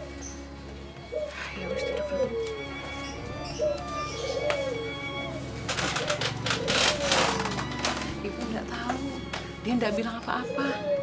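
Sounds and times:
faint background music: 0.0 - 11.0
dove cooing: 1.1 - 8.4, 9.8 - 11.0.

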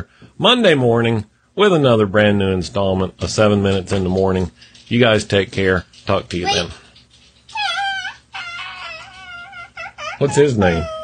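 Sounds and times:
child squeaking: 7.5 - 11.0
child squealing: 7.5 - 11.0.

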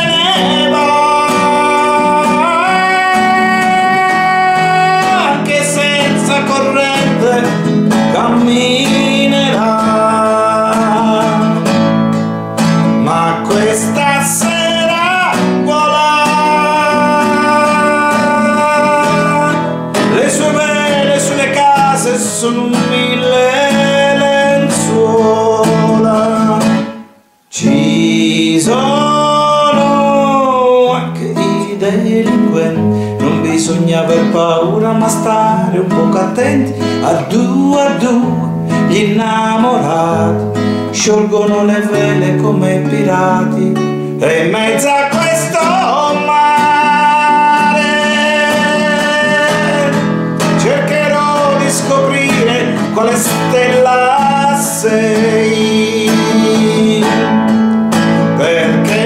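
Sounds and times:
classical guitar: 0.0 - 59.0
man singing: 0.0 - 59.0.

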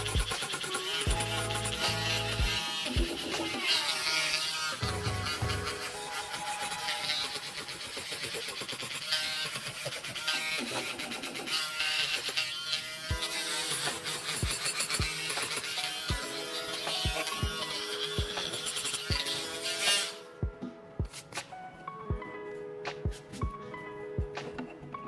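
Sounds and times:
rotary tool buzzing whine: 0.0 - 20.3
background music with bass beat: 1.1 - 3.5.

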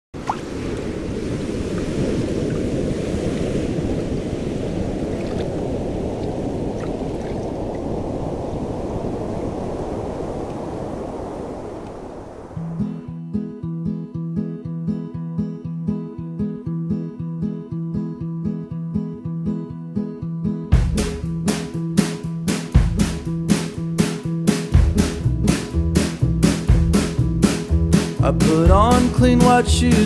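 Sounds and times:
ocean surf rushing: 0.2 - 13.0, 20.8 - 30.0
acoustic guitar strumming: 12.6 - 30.0.

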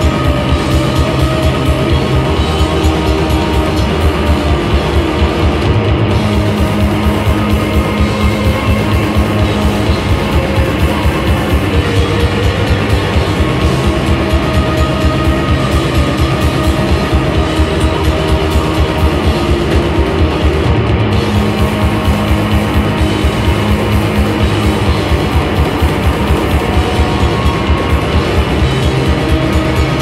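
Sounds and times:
bass guitar: 0.0 - 30.0
driving drum rhythm: 0.0 - 30.0
electric guitar: 0.0 - 30.0.

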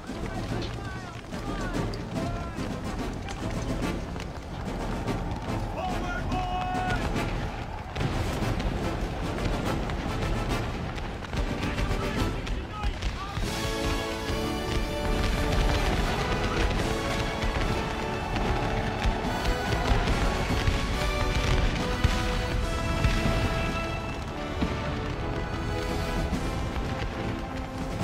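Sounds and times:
men shouting: 0.0 - 3.4, 4.6 - 8.0, 11.6 - 21.6
film score music: 0.0 - 28.0
musket shots: 0.0 - 28.0.

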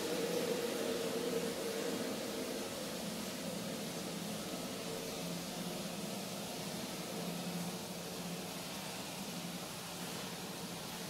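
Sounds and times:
constant hiss: 0.0 - 11.0.

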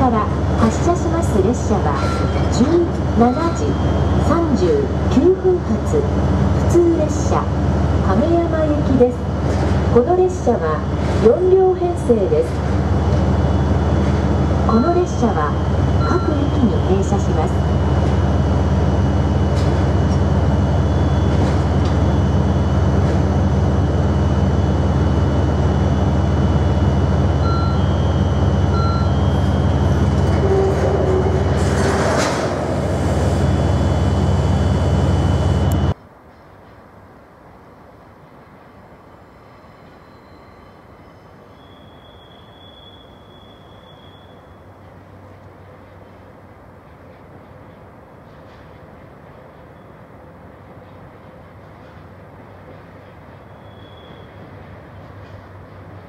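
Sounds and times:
freight train rumbling past: 0.0 - 42.0.

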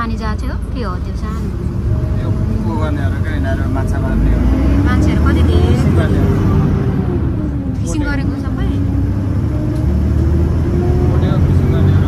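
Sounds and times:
bus engine and road noise: 0.0 - 12.0.

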